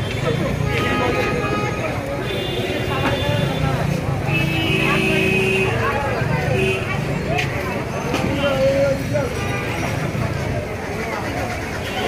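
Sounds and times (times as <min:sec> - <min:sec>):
passing traffic: 0:00.0 - 0:12.0.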